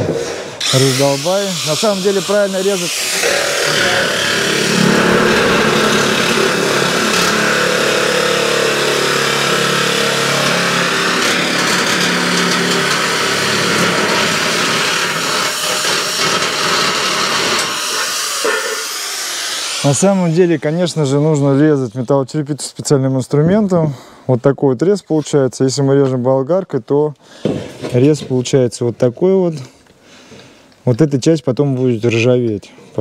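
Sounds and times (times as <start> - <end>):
electric shears cutting metal sheet: 0.6 - 20.6.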